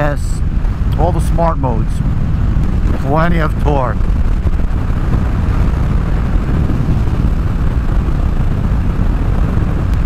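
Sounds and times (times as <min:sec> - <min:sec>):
motorcycle engine rumble: 0:00.0 - 0:10.0
wind and road noise: 0:00.0 - 0:10.0.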